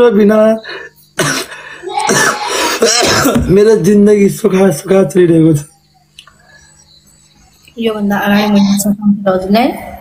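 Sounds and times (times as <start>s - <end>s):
man clearing his throat: 1.2s - 3.5s
man coughing: 1.2s - 3.5s.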